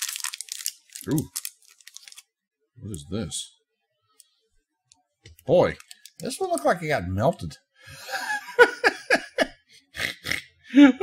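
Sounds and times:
wrapper crinkling and tearing: 0.0s - 2.3s.

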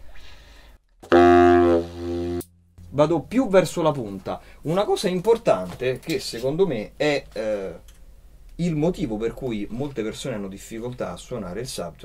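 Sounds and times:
baritone saxophone low note: 1.0s - 2.6s.

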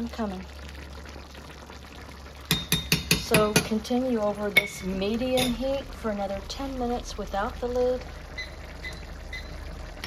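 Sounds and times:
food simmering in a skillet: 0.0s - 10.0s
spoon knocking against skillet: 2.5s - 3.8s.

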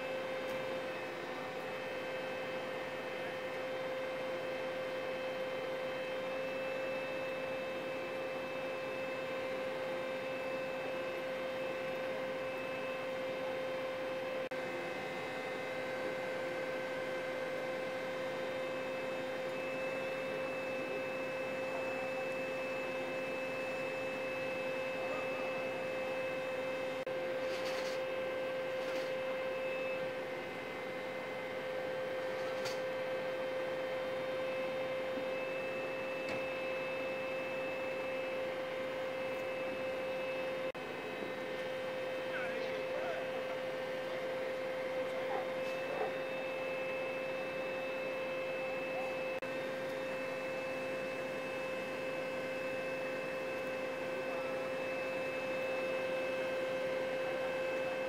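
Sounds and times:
steady high-pitched hum: 0.0s - 58.0s.

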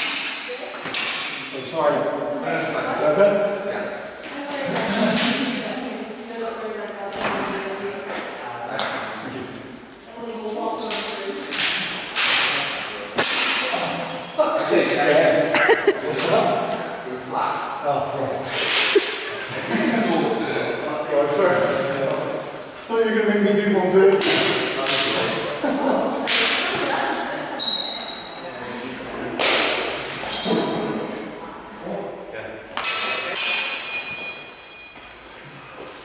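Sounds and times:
steel swords clashing: 32.8s - 35.0s
metallic ring from blades: 32.8s - 35.2s.

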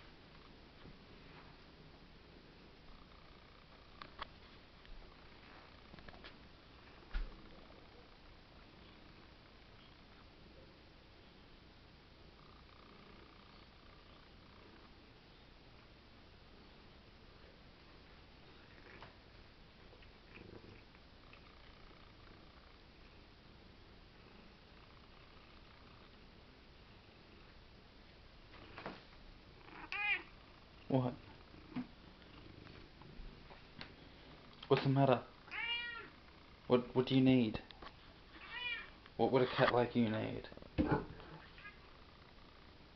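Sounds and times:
cat purring: 6.7s - 11.4s, 12.2s - 15.9s, 16.5s - 27.6s, 29.5s - 38.7s
cat meowing: 29.7s - 30.3s, 35.5s - 36.1s, 38.3s - 39.0s, 41.4s - 41.8s.

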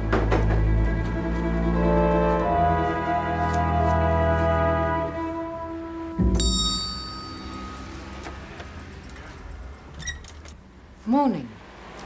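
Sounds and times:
background music: 0.0s - 9.9s
small bell ringing: 6.4s - 9.1s.

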